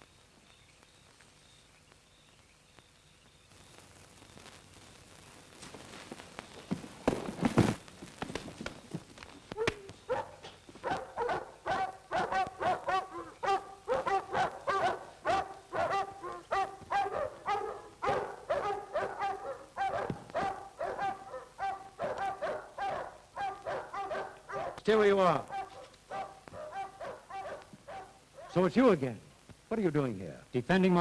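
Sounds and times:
dogs barking rapidly: 0:10.0 - 0:28.7.

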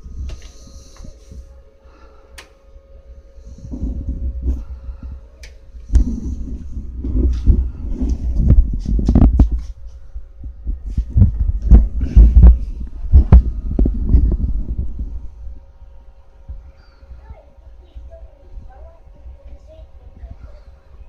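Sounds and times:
camera handling thumps and rumbling: 0:05.9 - 0:10.0.

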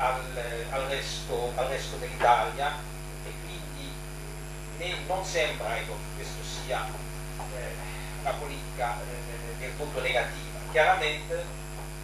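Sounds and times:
man speaking: 0:00.0 - 0:11.6
electrical mains hum: 0:00.0 - 0:12.0.

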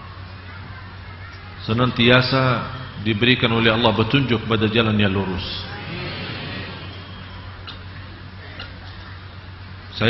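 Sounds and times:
low electrical hum: 0:00.0 - 0:10.0
microphone hiss: 0:00.0 - 0:10.0.

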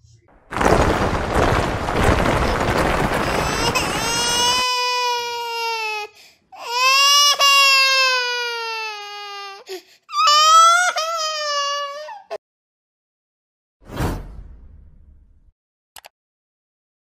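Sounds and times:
burst of noise: 0:00.3 - 0:04.8
comedic crying wails: 0:03.4 - 0:12.4.

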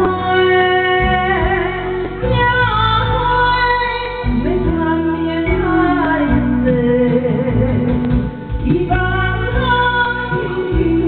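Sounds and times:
bass line: 0:00.0 - 0:11.0
woman singing with vibrato: 0:00.0 - 0:11.0.

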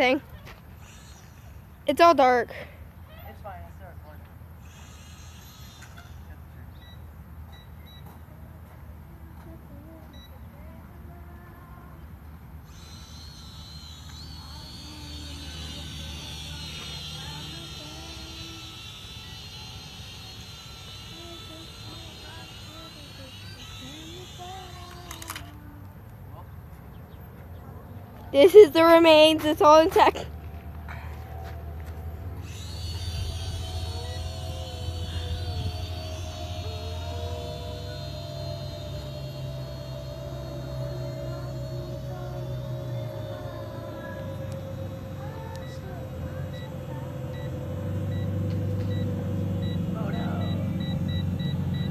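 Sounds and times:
toy drone propellers whining: 0:00.0 - 0:07.2, 0:12.6 - 0:26.2, 0:28.4 - 0:51.9.

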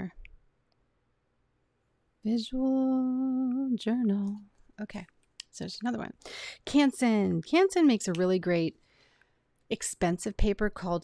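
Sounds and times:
person speaking: 0:02.2 - 0:08.8.

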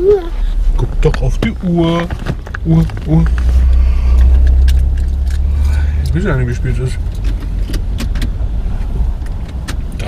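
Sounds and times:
car engine running: 0:00.0 - 0:10.0.

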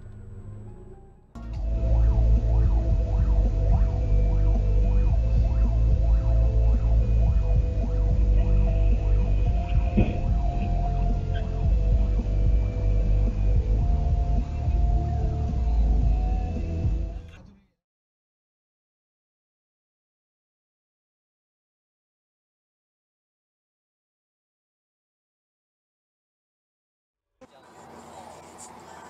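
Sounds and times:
fire engine siren wailing: 0:00.0 - 0:07.2
engine and road rumble: 0:00.0 - 0:17.4.

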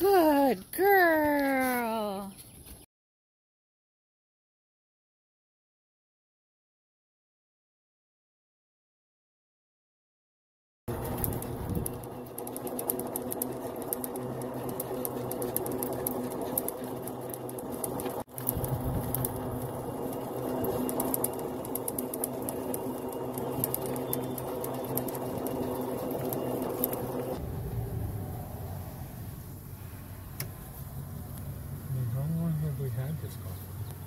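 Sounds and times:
golf cart running: 0:10.9 - 0:34.0.

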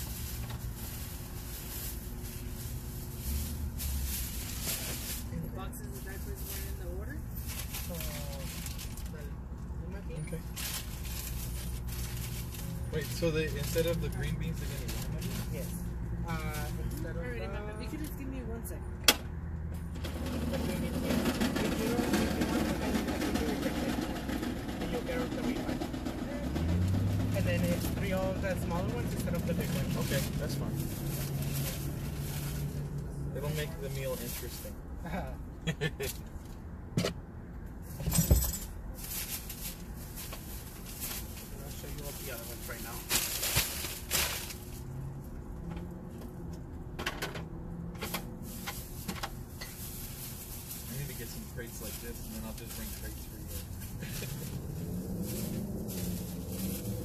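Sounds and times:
groceries rustling and knocking: 0:10.4 - 0:15.7, 0:19.9 - 0:34.6, 0:37.9 - 0:45.9
car engine idling: 0:19.8 - 0:34.2
bags rustling: 0:52.5 - 0:57.0.

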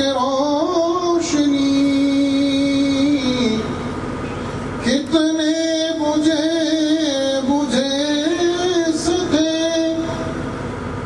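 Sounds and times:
man singing into a microphone: 0:00.0 - 0:03.8, 0:04.8 - 0:10.4.

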